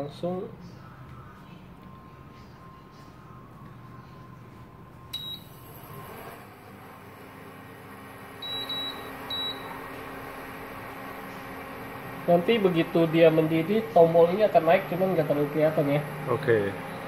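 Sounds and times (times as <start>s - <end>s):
touch control panel beeping: 5.1s - 5.6s, 8.4s - 9.8s.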